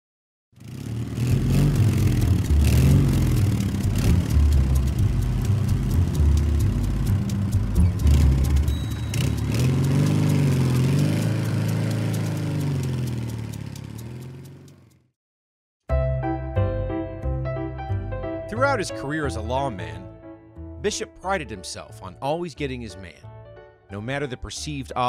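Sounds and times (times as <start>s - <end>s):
engine running and revving: 0.6s - 15.1s.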